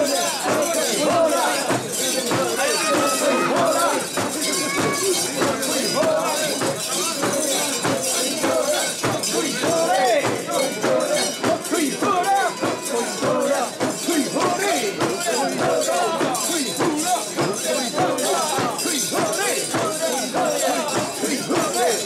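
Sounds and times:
crowd shouting and chanting: 0:00.0 - 0:22.0.

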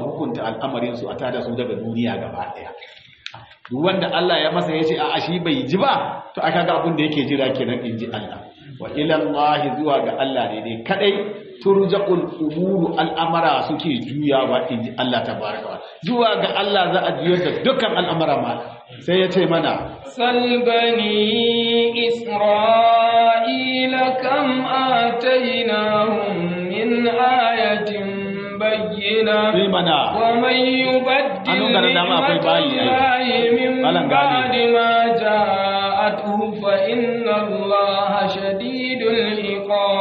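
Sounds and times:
man chanting: 0:00.0 - 0:02.8, 0:03.5 - 0:40.0.

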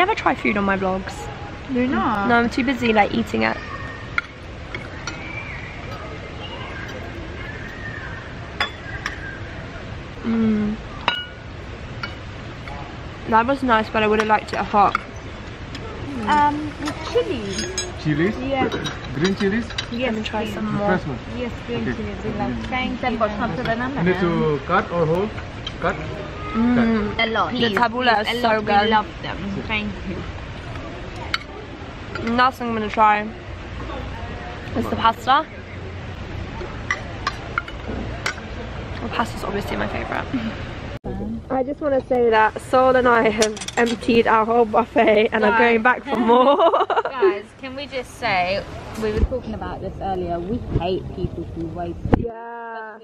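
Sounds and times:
tableware clink: 0:08.6 - 0:09.2, 0:11.1 - 0:11.4, 0:16.2 - 0:20.0.

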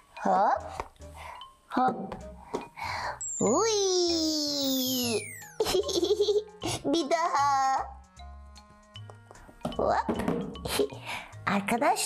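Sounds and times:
children's background music: 0:00.0 - 0:12.0
descending whistle sound effect: 0:04.7 - 0:05.6.

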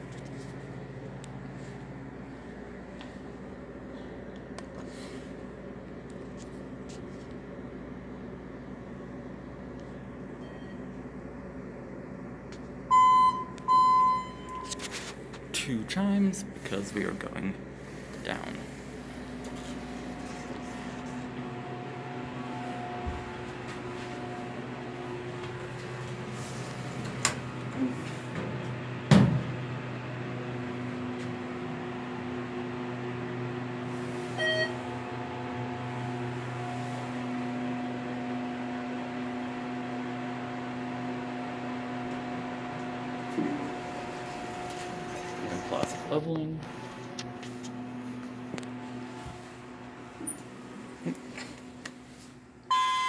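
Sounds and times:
elevator electrical hum: 0:00.0 - 0:53.0
short beep-like tone: 0:12.9 - 0:14.8, 0:34.4 - 0:34.8, 0:52.7 - 0:53.0.

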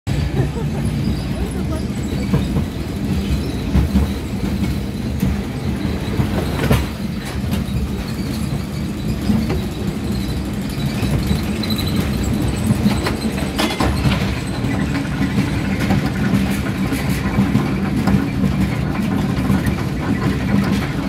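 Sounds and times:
roller coaster wheels rumbling: 0:00.1 - 0:21.0
track clicks and knock: 0:11.0 - 0:21.0.

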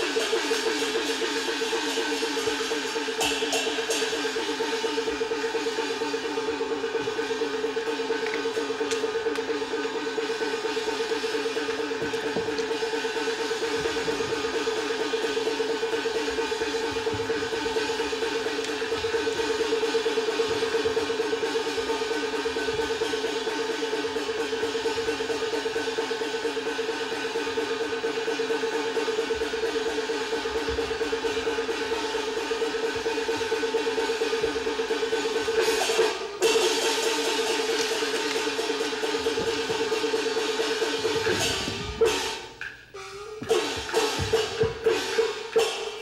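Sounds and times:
light percussion: 0:00.0 - 0:46.0.

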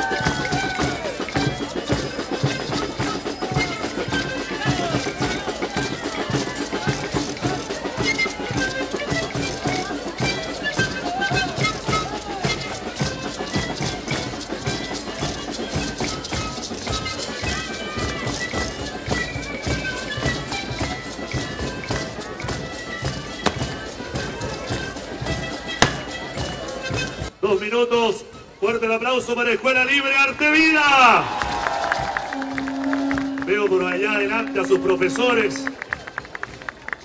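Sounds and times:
bass drums beating: 0:00.0 - 0:08.2, 0:23.3 - 0:26.4, 0:31.2 - 0:35.8
crowd voices: 0:00.0 - 0:27.4, 0:31.0 - 0:37.0
violins: 0:00.0 - 0:27.4, 0:30.5 - 0:37.0.

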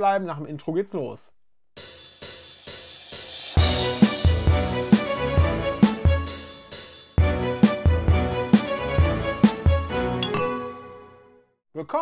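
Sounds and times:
man speaking: 0:00.0 - 0:01.4
intro theme music: 0:03.3 - 0:11.3.

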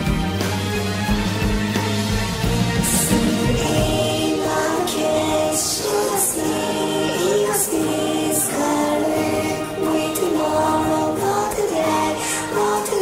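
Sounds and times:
choir singing gliding held notes: 0:02.6 - 0:13.0.

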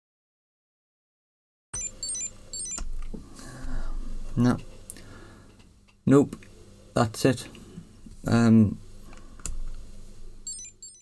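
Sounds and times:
hair straightener startup beeps: 0:01.8 - 0:02.8, 0:10.5 - 0:11.0.

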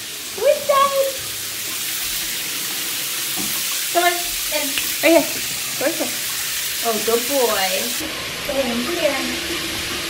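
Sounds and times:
shower water spraying on tiles: 0:00.0 - 0:10.0.

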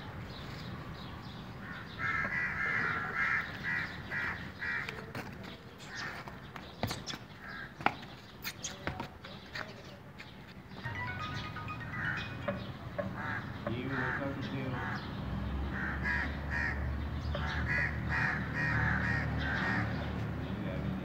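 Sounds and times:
crows cawing: 0:01.6 - 0:05.1, 0:05.9 - 0:06.4, 0:07.4 - 0:07.8, 0:11.8 - 0:15.1, 0:15.7 - 0:20.1.

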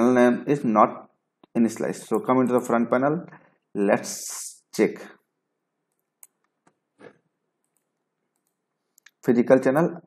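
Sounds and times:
computer mouse clicks: 0:05.9 - 0:09.2.

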